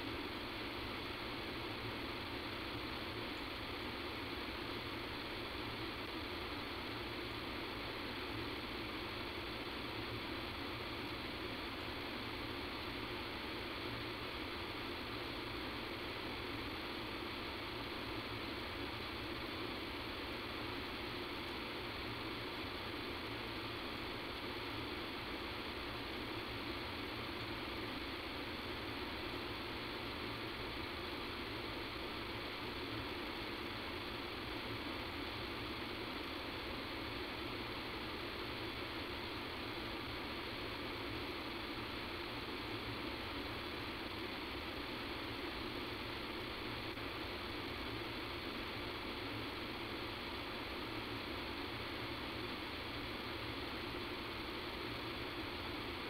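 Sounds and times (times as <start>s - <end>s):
telephone line hiss and hum: 0.0s - 56.0s.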